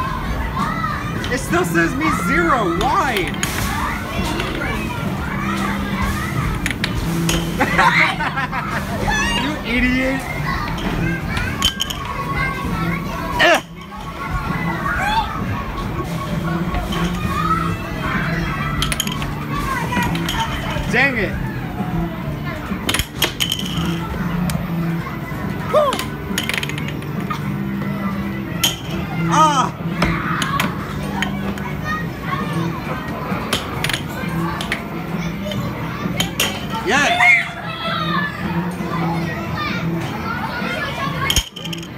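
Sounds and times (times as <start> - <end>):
background music: 0.0 - 41.9
children's voices and chatter: 0.0 - 41.9.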